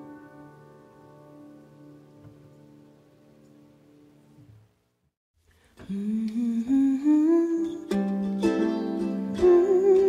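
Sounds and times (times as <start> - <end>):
woman humming a melody: 5.9 - 8.0, 9.3 - 10.0.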